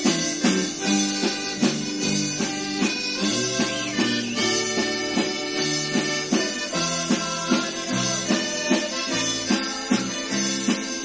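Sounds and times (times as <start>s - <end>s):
live band instrumental music: 0.0s - 11.0s.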